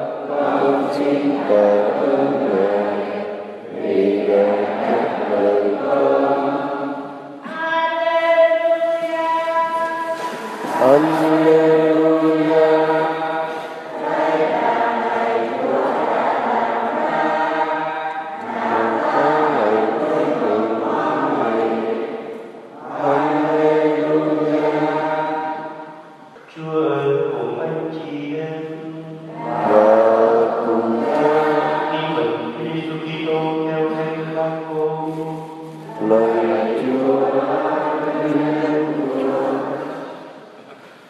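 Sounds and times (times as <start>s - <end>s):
choir singing a slow hymn: 0.0s - 7.5s, 8.3s - 26.4s, 27.1s - 40.8s.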